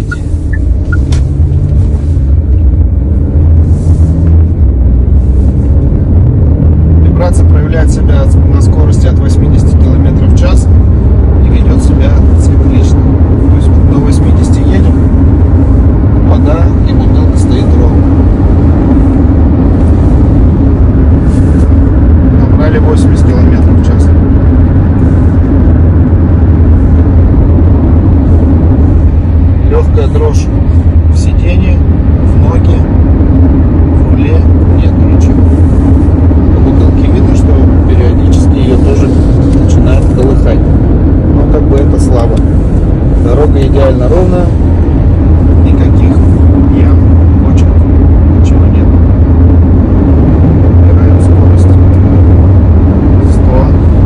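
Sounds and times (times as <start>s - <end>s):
road and engine rumble in car: 0.0s - 54.0s.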